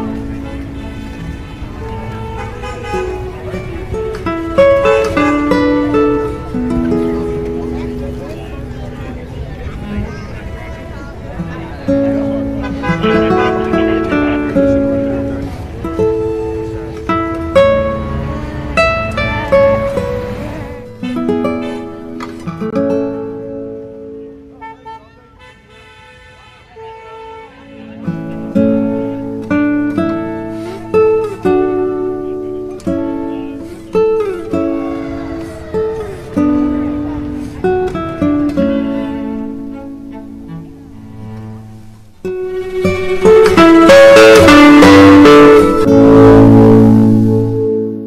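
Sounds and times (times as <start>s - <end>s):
car horns honking: 0.0s - 8.5s, 11.5s - 22.5s, 24.4s - 48.0s
voices: 0.0s - 22.7s, 24.2s - 41.6s, 42.3s - 47.5s
music with plucked strings: 0.0s - 24.6s, 27.7s - 48.0s.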